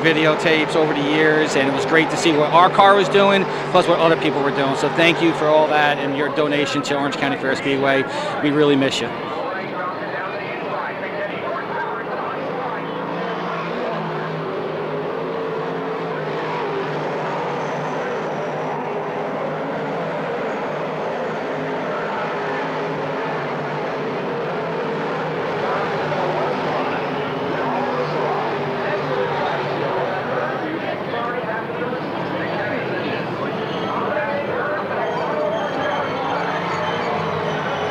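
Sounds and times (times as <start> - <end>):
race car engines droning: 0.0 - 37.9.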